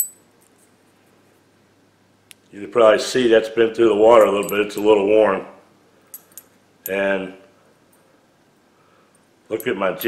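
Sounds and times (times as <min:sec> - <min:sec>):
light metallic clink: 0:00.0 - 0:00.7, 0:04.2 - 0:04.9, 0:06.1 - 0:07.0.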